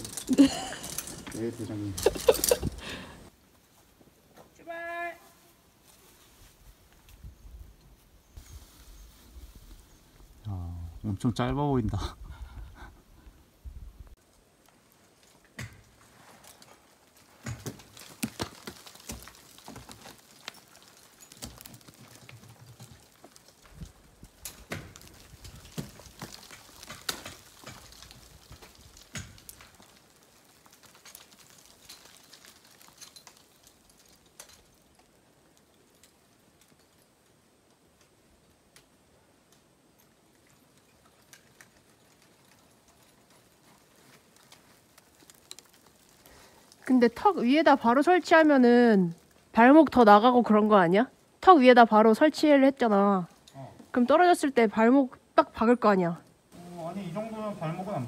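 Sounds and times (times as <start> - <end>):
ice axes striking ice: 17.2 - 23.8, 24.4 - 34.7.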